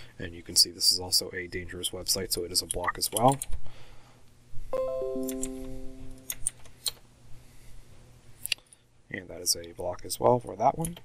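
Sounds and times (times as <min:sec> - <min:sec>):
computer notification chime: 0:04.8 - 0:06.5.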